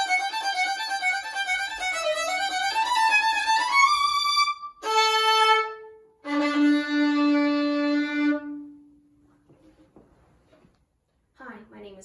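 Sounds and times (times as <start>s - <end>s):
solo violin bowed: 0.0s - 8.9s.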